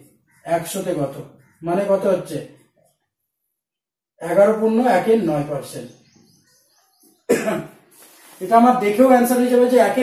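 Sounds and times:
man speaking: 0.0s - 2.6s, 4.2s - 6.0s, 8.4s - 10.0s.

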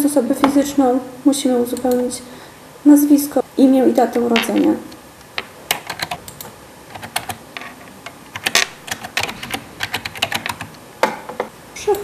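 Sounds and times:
keyboard typing: 5.7s - 7.4s, 8.3s - 10.8s.

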